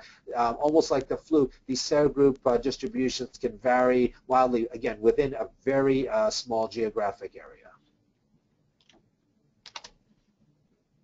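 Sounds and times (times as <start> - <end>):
computer key clicks: 9.6 - 10.0.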